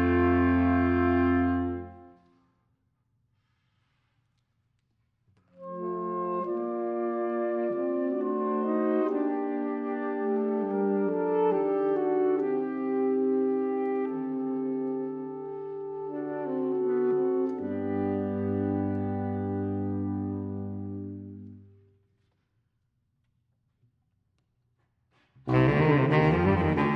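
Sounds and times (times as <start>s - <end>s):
saxophone quartet playing chords: 0.0s - 2.2s, 5.6s - 21.7s, 25.5s - 26.9s
low baritone saxophone note: 25.5s - 26.9s.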